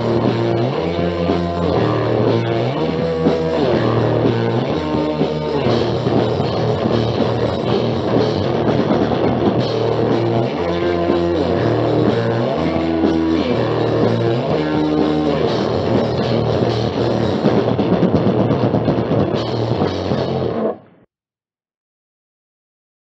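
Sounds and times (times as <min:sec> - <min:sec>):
drum kit: 0:00.0 - 0:21.0
punk band playing: 0:00.0 - 0:21.0
electric guitar: 0:00.0 - 0:21.1.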